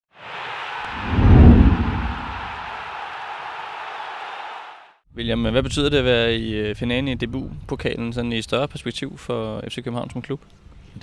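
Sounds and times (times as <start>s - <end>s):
rush of noise: 0.9s - 2.6s
deep boom: 1.0s - 2.5s.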